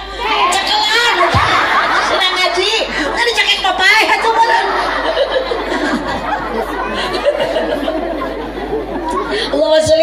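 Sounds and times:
woman's voice over loudspeakers: 0.0s - 5.0s, 9.4s - 10.0s
chatter of voices: 0.0s - 10.0s.

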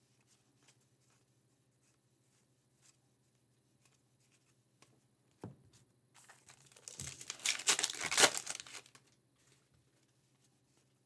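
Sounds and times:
foil wrapper crinkling and tearing: 6.2s - 9.0s.

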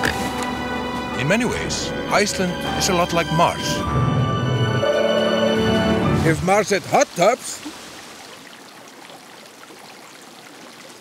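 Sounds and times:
water trickling and hissing: 6.7s - 11.0s.

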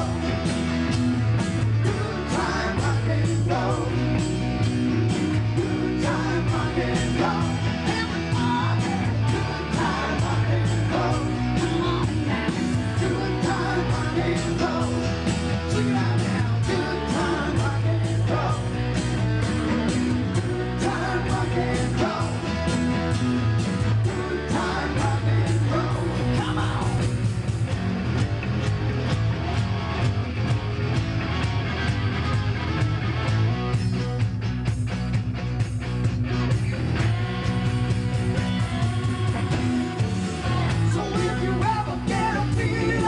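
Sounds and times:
rock and roll band playing: 0.0s - 43.0s.

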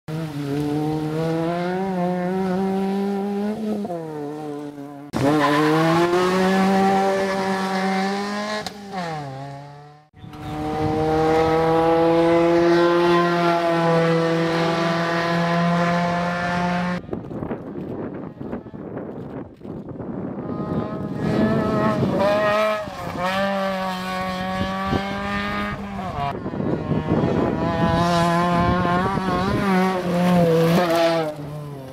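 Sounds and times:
rally car engine revving: 0.1s - 17.0s, 20.2s - 31.9s.

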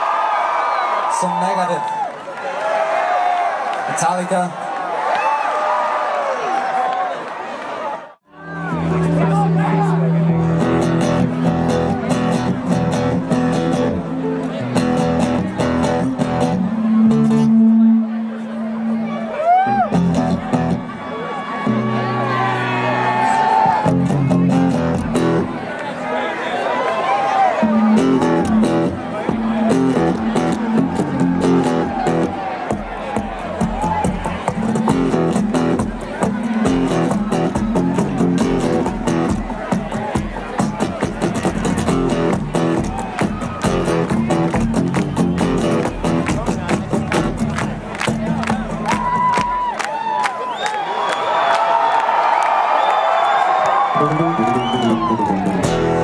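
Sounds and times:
acoustic guitars playing metal: 8.3s - 25.7s, 27.6s - 49.6s, 54.0s - 56.0s.

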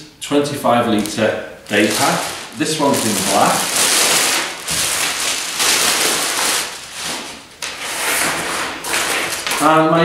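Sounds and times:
plastic bag crinkling: 0.9s - 9.8s.

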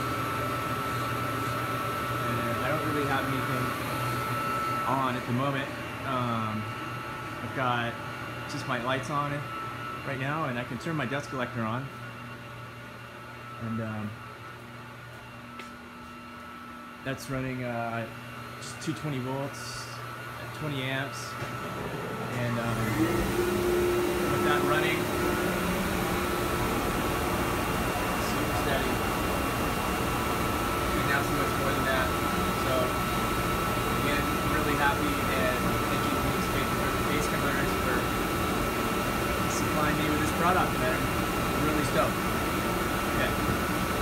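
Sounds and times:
electric hum: 0.0s - 44.0s
rotary phase converter running: 0.0s - 44.0s
thin steady whine: 0.0s - 44.0s.

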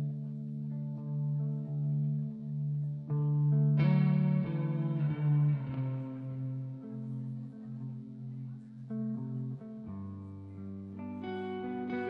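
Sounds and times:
electric guitar with effects: 0.0s - 12.0s.

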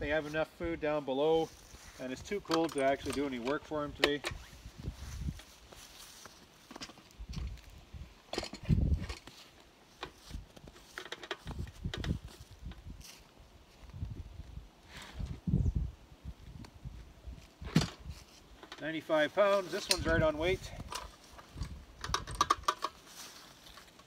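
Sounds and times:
footsteps: 4.3s - 7.7s.

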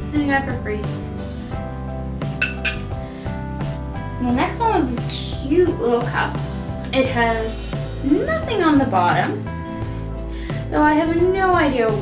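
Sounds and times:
background music: 0.0s - 12.0s
dishes and utensils clinking: 2.3s - 2.9s.

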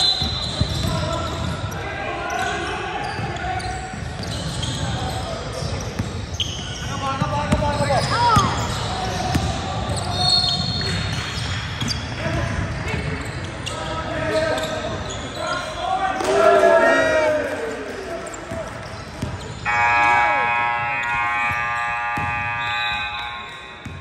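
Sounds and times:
basketball bouncing on wooden court: 0.2s - 1.6s, 3.1s - 13.4s, 18.5s - 19.6s, 21.4s - 22.5s
scoreboard buzzer: 19.7s - 24.0s.

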